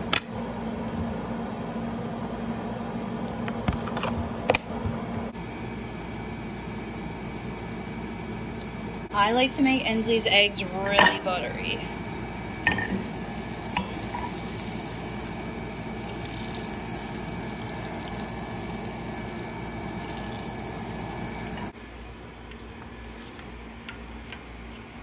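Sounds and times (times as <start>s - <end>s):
butter sizzling in a frying pan: 11.4s - 21.7s.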